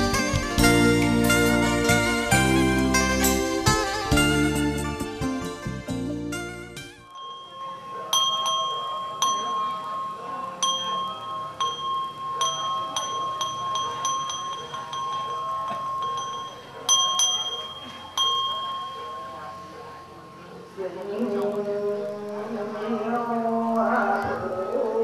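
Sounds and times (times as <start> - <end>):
small metal bell ringing: 7.1 - 20.3.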